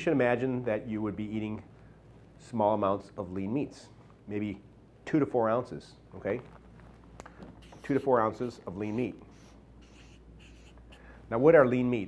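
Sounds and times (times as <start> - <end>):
marker writing on paper: 7.6 - 11.1.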